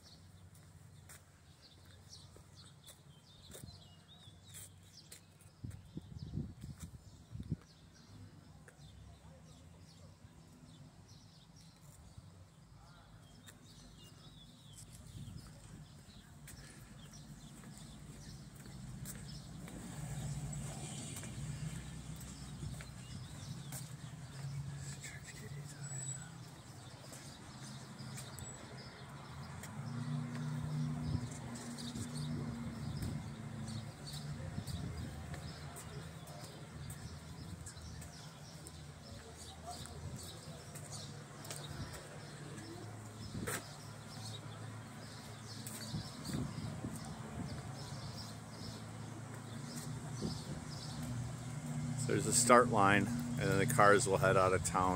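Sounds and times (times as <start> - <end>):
faint distant voices: 15.2 - 27.4, 30.8 - 51.0.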